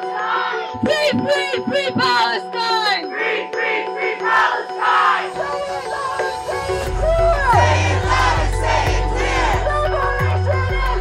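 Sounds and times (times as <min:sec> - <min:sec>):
song with singing: 0:00.0 - 0:11.0
crowd chanting: 0:02.1 - 0:05.5, 0:07.4 - 0:09.7.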